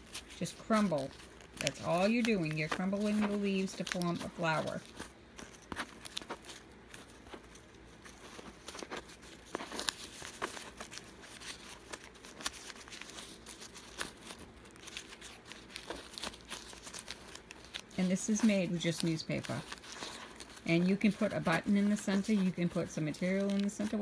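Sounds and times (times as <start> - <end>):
newspaper crumpling: 0.0 - 24.0.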